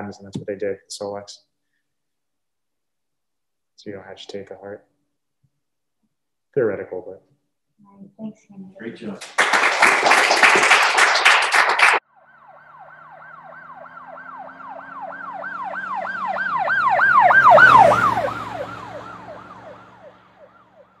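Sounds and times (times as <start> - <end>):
people clapping: 8.8 - 12.0
emergency siren yelping: 12.0 - 21.0
engine hum: 12.2 - 21.0.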